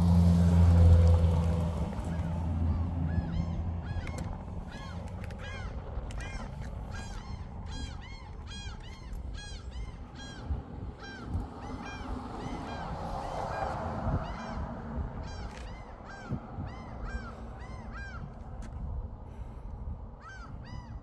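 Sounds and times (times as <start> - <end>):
birds calling: 1.8 - 18.8.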